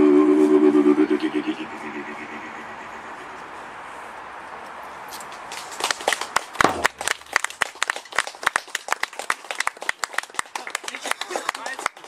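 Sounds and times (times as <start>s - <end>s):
audience clapping: 5.5s - 12.0s
loud thump: 6.6s - 7.1s.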